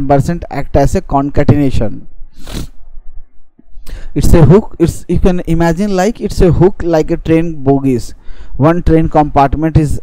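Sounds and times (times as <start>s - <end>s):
man narrating: 0.0s - 2.1s, 4.0s - 10.0s.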